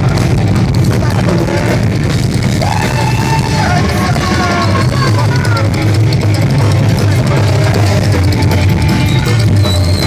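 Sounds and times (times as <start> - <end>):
live band playing loudly: 0.0 - 10.0
upright bass: 0.0 - 10.0
person's voice: 3.6 - 5.8.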